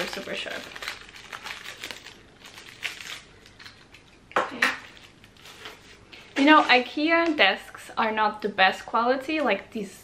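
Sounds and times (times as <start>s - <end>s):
plastic wrapping crinkling and tearing: 0.0s - 7.5s.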